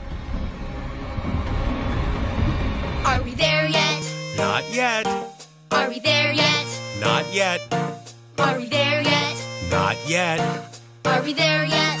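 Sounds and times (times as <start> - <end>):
low deep rumble: 0.0 - 3.6.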